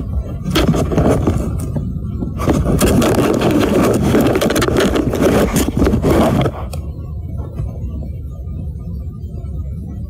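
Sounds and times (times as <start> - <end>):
plastic case rubbing and rattling: 0.0 - 7.8.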